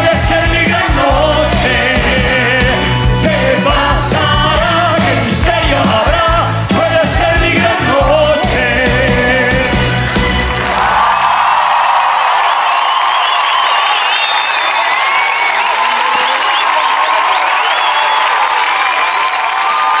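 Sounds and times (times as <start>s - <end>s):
band playing: 0.0s - 11.1s
audience cheering and applauding: 0.0s - 20.0s.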